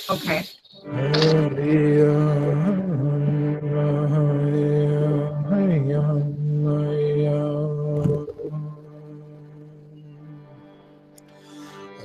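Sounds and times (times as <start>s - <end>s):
man chanting low note: 0.9s - 9.4s.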